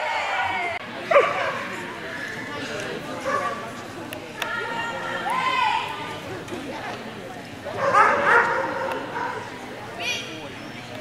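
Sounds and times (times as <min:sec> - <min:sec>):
people chattering: 0:00.0 - 0:11.0
dog barking: 0:07.8 - 0:09.5.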